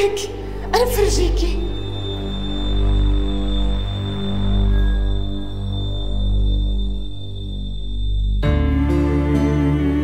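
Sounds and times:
low dark drone: 0.0 - 10.0.

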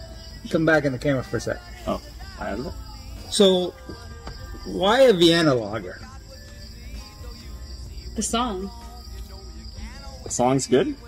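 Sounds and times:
crickets droning: 0.0 - 11.0
faint background music: 0.0 - 11.0.

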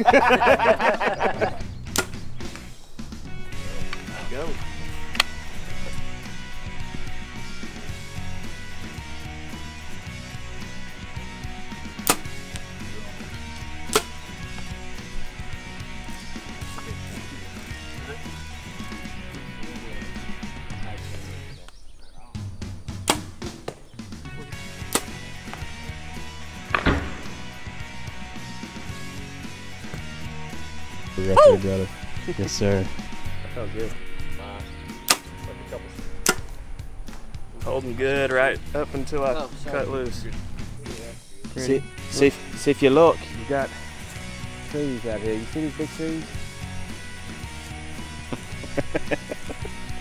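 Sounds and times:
background music: 0.0 - 50.0
bow shots and arrows hitting targets: 1.9 - 2.8, 11.6 - 17.8, 22.9 - 29.1, 34.9 - 37.3.

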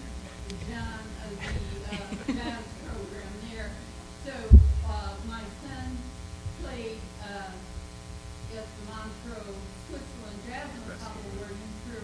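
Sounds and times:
low hum: 0.0 - 12.0
deep thump on microphone: 4.5 - 5.2.

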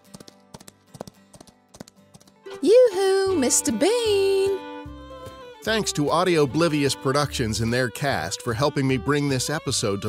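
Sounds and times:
horse hooves clip-clop: 0.0 - 2.6
quiet background music: 2.4 - 10.0.

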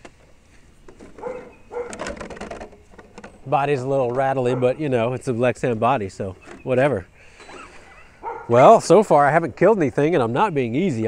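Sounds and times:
toy truck body rattling: 0.9 - 3.4.

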